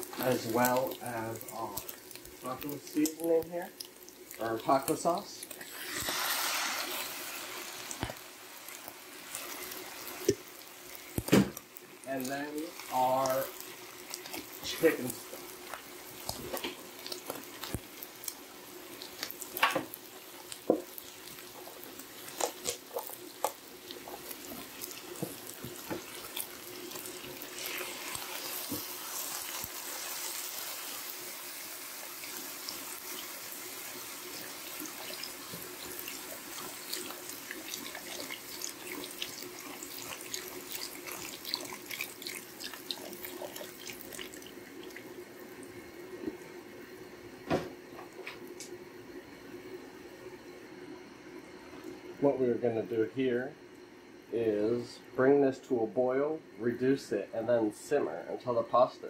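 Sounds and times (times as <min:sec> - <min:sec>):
liquid splashing and bubbling in pan: 0:00.0 - 0:52.2.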